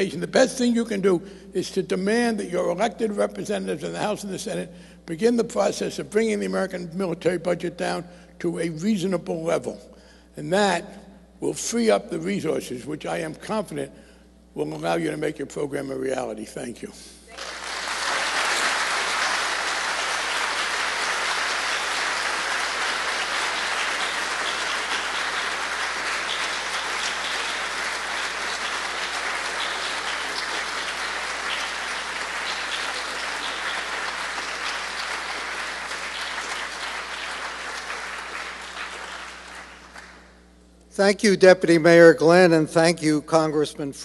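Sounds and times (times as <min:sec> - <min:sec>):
audience applauding: 0:17.3 - 0:40.3.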